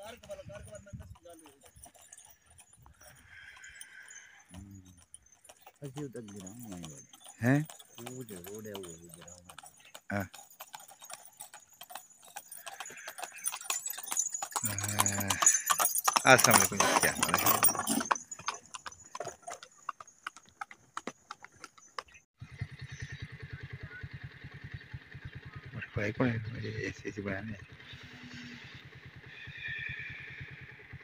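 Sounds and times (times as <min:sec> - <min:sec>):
horse hooves clip-clopping on dirt: 0:00.0 - 0:22.3.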